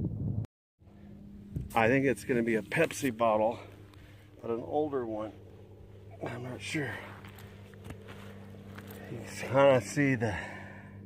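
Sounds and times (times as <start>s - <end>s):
faint low hum: 0.8s - 11.0s.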